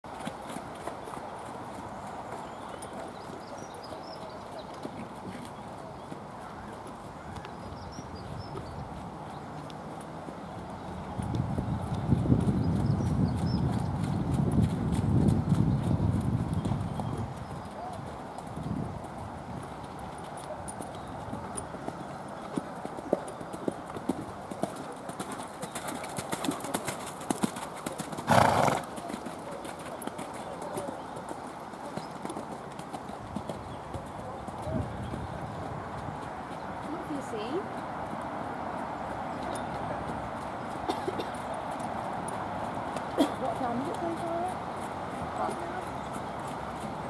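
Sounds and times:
pony hoofbeats on wet sand: 0:00.1 - 0:47.0.

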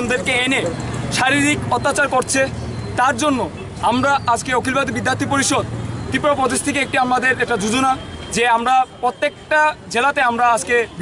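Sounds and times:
man speaking loudly: 0:00.0 - 0:11.0
road traffic: 0:00.0 - 0:11.0.

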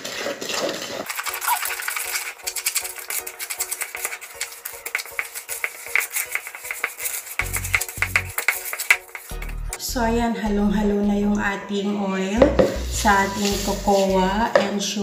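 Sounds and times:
whisk clicking against a bowl: 0:01.1 - 0:09.8
background music: 0:01.1 - 0:15.0.

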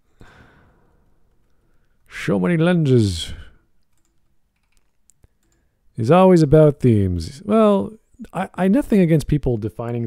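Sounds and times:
person sighing: 0:00.2 - 0:00.9.

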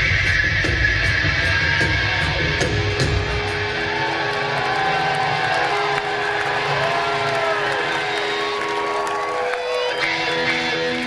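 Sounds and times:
drums: 0:00.0 - 0:11.0
electric guitar lines with bends: 0:07.7 - 0:11.0.

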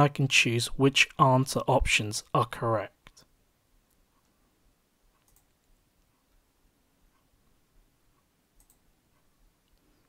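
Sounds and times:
faint computer mouse clicks: 0:05.2 - 0:06.2, 0:08.6 - 0:10.0.

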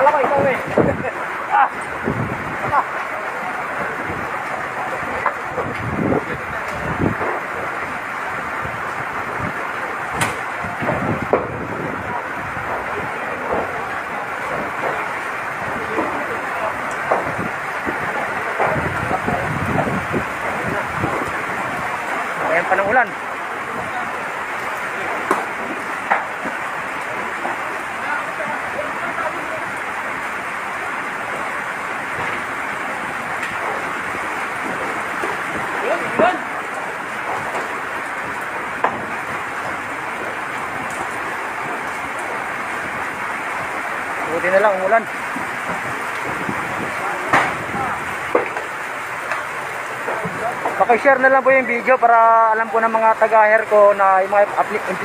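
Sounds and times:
fire rushing noise: 0:00.0 - 0:55.0.

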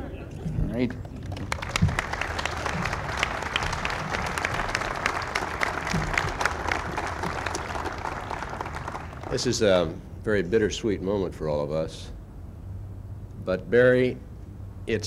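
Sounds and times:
audience applauding: 0:01.0 - 0:09.7.

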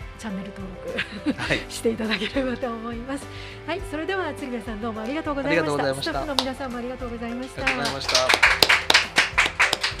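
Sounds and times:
people clapping: 0:06.2 - 0:06.6, 0:07.4 - 0:10.0.

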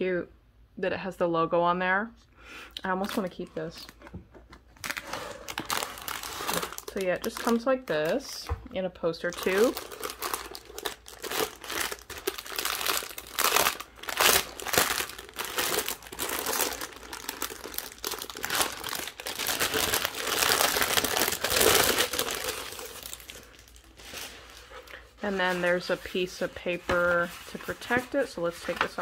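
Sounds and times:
paper crinkling and rustling: 0:03.0 - 0:08.5, 0:09.2 - 0:29.0.

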